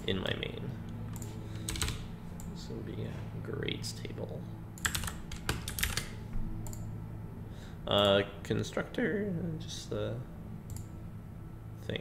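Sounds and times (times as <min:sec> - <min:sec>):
low steady hum: 0:00.0 - 0:12.0
computer mouse clicks: 0:01.1 - 0:02.5, 0:05.7 - 0:06.9, 0:10.7 - 0:10.9
person saying uh: 0:08.9 - 0:10.2.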